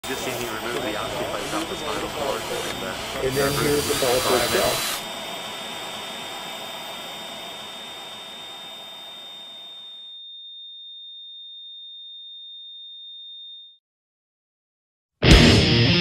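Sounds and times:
high-pitched electronic tone: 0:08.1 - 0:10.2.

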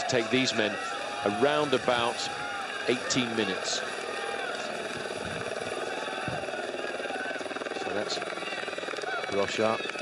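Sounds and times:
fast-pulsing motor drone: 0:00.0 - 0:10.0.

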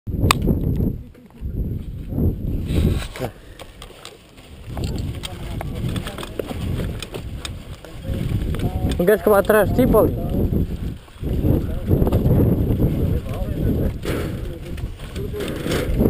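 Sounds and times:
low rumbling wind: 0:00.1 - 0:16.0.

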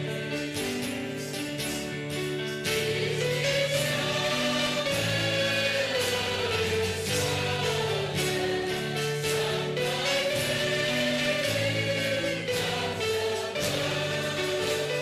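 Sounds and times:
choir singing slow hymn: 0:02.7 - 0:15.0.

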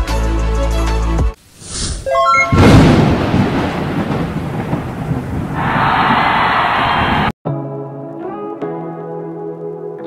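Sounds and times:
thunder rumble: 0:02.5 - 0:07.3.

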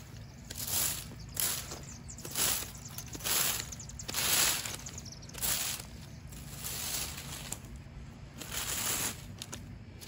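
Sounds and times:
leaf rake scraping dirt: 0:00.0 - 0:10.0.

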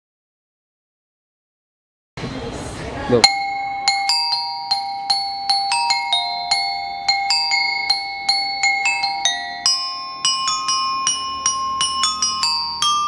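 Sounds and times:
glockenspiel melody: 0:03.2 - 0:13.0.

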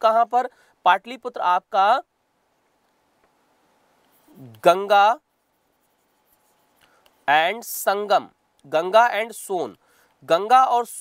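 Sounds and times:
man speaking: 0:00.0 - 0:02.1, 0:04.2 - 0:05.3, 0:07.2 - 0:11.0
stylus writing on pen tablet: 0:04.0 - 0:07.4.

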